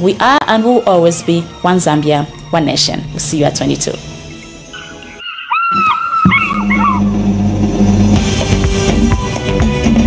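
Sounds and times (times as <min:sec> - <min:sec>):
quiet background music: 0:00.0 - 0:10.0
fish eagle call: 0:04.6 - 0:07.1.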